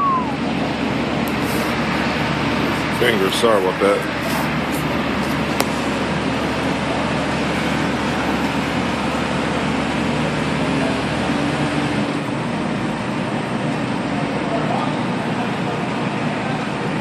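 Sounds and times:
crane diesel engines droning: 0.0 - 17.0.

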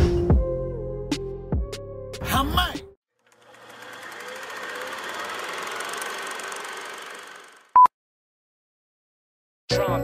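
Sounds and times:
rapid mechanical rattle: 3.2 - 7.7.

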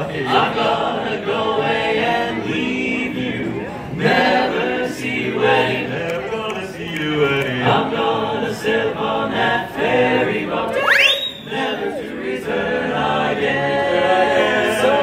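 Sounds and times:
male quartet singing a cappella: 0.0 - 15.0.

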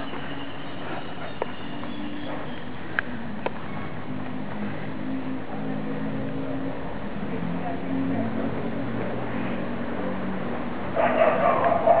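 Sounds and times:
puppies yapping: 11.0 - 12.0.

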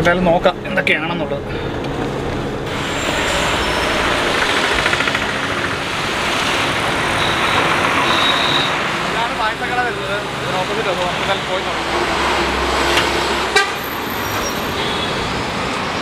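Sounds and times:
road traffic rushing past: 0.0 - 16.0.

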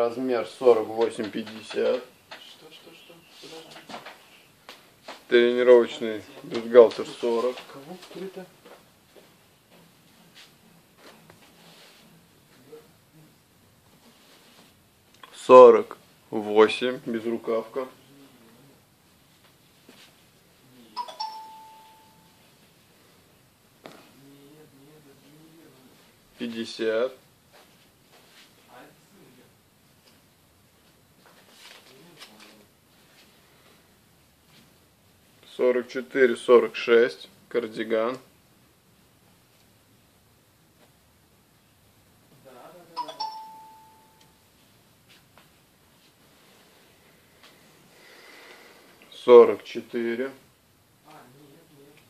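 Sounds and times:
two-note chime: 21.0 - 22.4, 43.0 - 44.4.

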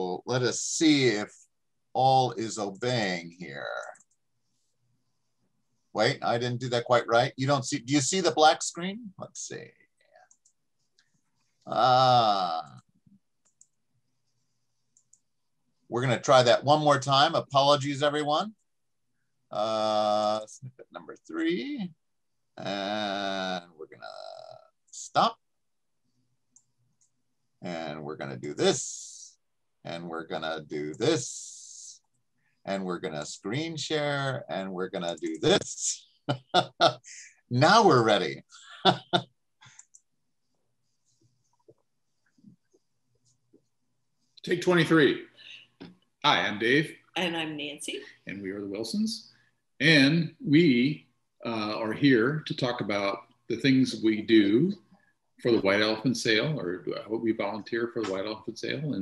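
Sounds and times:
faint clicks: 3.8 - 4.2, 10.0 - 11.7, 12.7 - 15.3, 38.5 - 40.1
computer mouse clicks: 3.9 - 4.2, 10.3 - 11.6, 13.4 - 13.8, 39.6 - 40.1
person laughing: 35.2 - 39.2.

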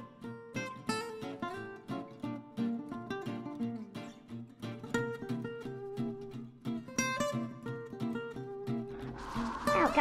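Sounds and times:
plucked guitar melody: 0.0 - 10.0.

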